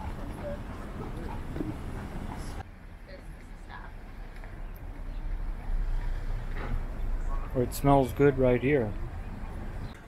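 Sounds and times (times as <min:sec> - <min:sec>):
faint voice of passer-by: 0:00.0 - 0:06.1
low street rumble: 0:00.0 - 0:10.0.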